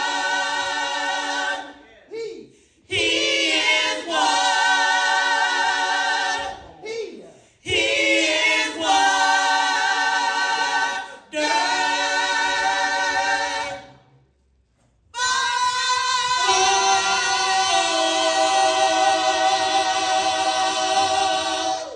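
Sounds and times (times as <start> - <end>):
vocal group singing a cappella: 0.0 - 14.3, 15.2 - 21.9.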